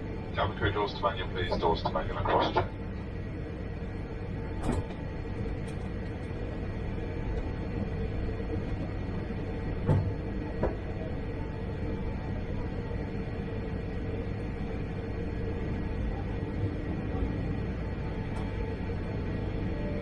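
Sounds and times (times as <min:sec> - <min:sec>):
airliner cabin hum: 0:00.0 - 0:20.0
constant mid-pitched tone: 0:00.0 - 0:20.0.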